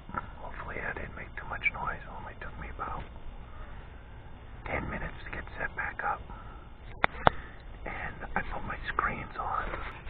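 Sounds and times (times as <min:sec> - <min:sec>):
low soft speech: 0:00.0 - 0:03.1, 0:04.6 - 0:06.3, 0:07.8 - 0:10.0.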